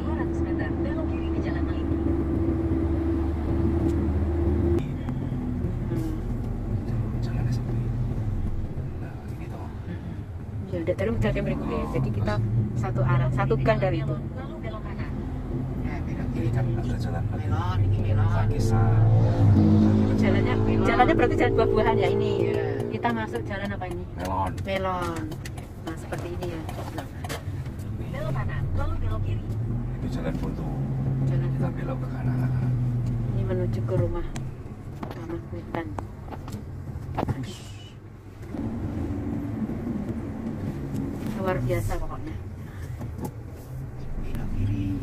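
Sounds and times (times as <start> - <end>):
people talking: 0.0 - 2.1, 9.0 - 15.2, 15.8 - 27.2, 28.0 - 29.4, 33.3 - 34.4, 35.1 - 36.0, 41.3 - 42.4
car engine humming inside cabin: 0.0 - 45.0
road noise: 0.0 - 45.0.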